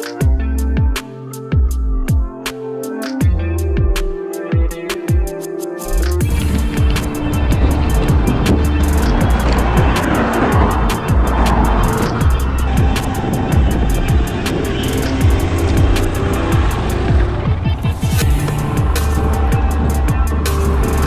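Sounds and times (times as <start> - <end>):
electronic music with heavy bass: 0.0 - 21.0.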